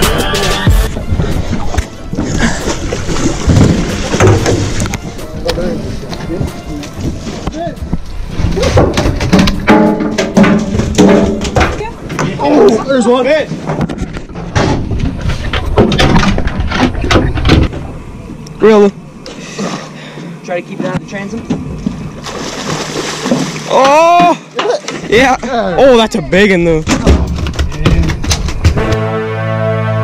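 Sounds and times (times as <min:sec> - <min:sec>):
music with heavy drums: 0:00.0 - 0:01.0
knocks on an aluminium boat: 0:03.5 - 0:04.7.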